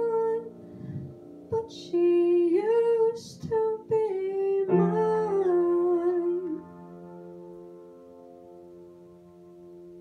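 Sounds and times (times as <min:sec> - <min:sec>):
piano: 0:00.0 - 0:10.0.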